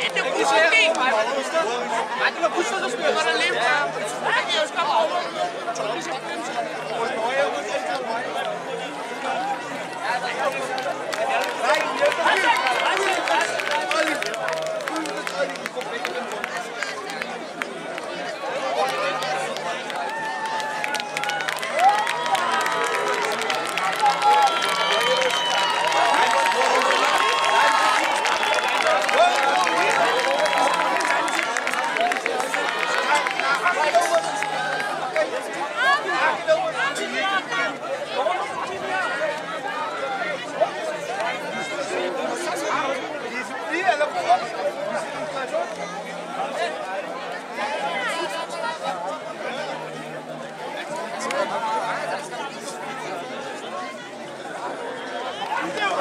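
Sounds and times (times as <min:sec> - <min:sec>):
crowd talking and shouting: 0:00.0 - 0:56.0.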